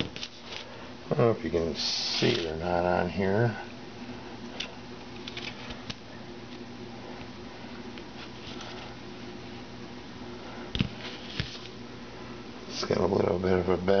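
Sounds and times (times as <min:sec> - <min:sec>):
steady faint hum: 0:00.0 - 0:14.0.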